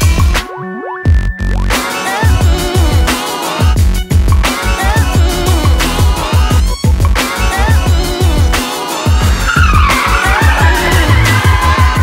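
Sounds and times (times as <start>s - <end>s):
electronic music with heavy beat: 0.0s - 12.0s
car tyres squealing: 9.2s - 11.8s.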